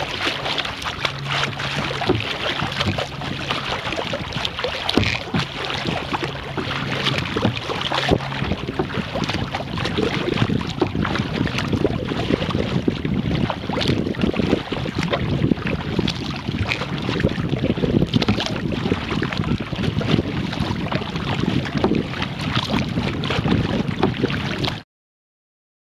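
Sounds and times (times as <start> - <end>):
small splashes and crackles: 0.0 - 12.8, 13.4 - 24.8
water lapping against canoe: 0.0 - 24.8
wind rumbling on microphone: 0.0 - 24.8.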